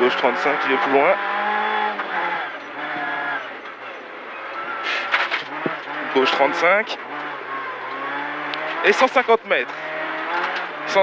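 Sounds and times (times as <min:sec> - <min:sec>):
rally car engine under load: 0:00.0 - 0:11.0
sharp engine crackles: 0:00.0 - 0:11.0.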